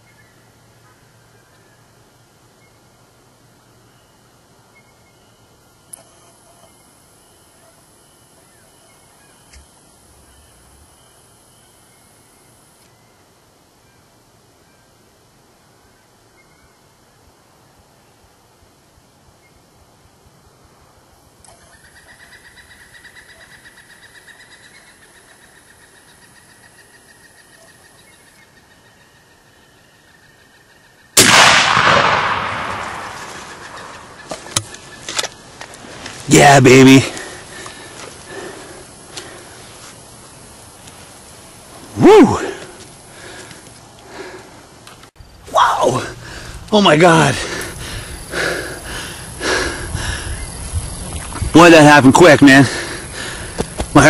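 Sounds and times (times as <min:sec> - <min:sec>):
shotgun blast: 0:31.2 - 0:34.2.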